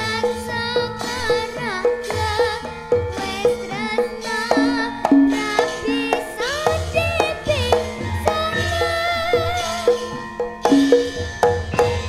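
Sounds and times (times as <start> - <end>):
girl singing into microphone: 0.0 - 10.9
drum strokes: 0.0 - 12.0
metallophones and gongs: 0.0 - 12.0.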